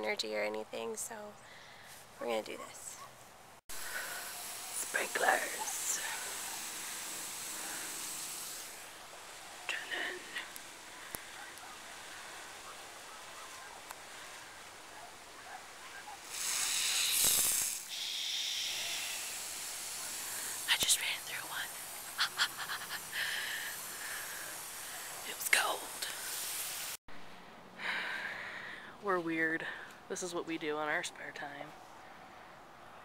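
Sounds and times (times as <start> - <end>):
lawn sprinklers hissing: 3.7 - 27.0.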